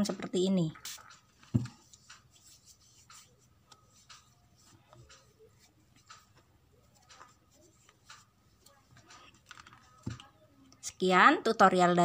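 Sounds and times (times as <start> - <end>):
palms rubbing together: 0.8 - 10.1.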